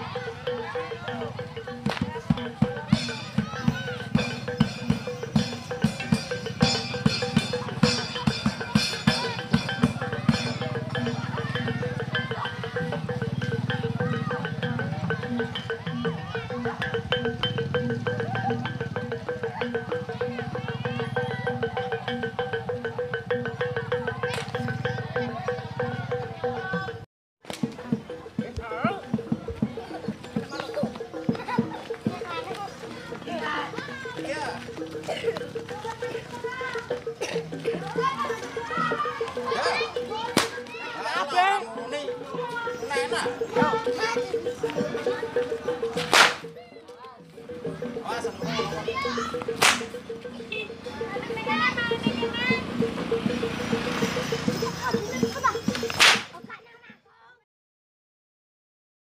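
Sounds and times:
children shouting: 0:00.0 - 0:17.3, 0:17.9 - 0:22.4, 0:28.9 - 0:57.4
gamelan music: 0:00.0 - 0:56.7
even drum strokes: 0:01.1 - 0:27.0
rope whip crack: 0:40.4 - 0:40.6, 0:46.0 - 0:46.4, 0:49.6 - 0:49.9, 0:55.8 - 0:56.4.

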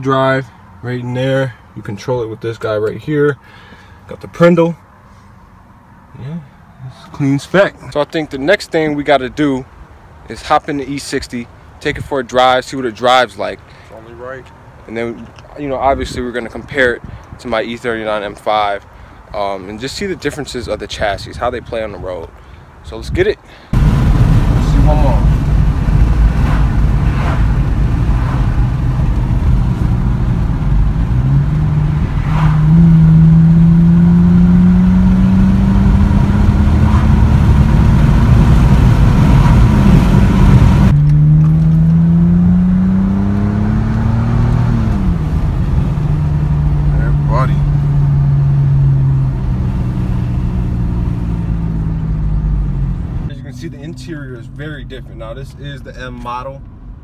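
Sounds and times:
low road rumble: 0:00.0 - 0:57.0
car engine accelerating: 0:23.8 - 0:57.0.

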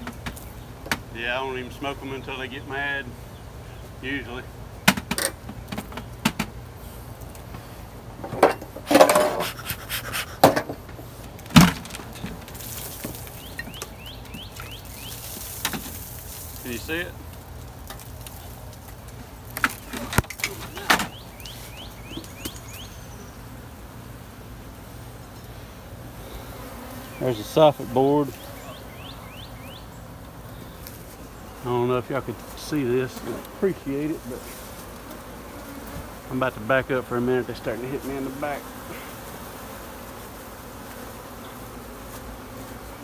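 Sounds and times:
metal tool scraping board: 0:08.8 - 0:10.8.

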